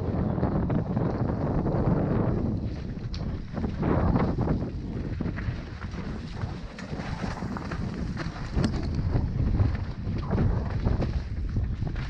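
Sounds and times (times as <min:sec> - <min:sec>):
wind rumbling on microphone: 0:00.0 - 0:12.0
bike knocking and rattling: 0:00.4 - 0:12.0.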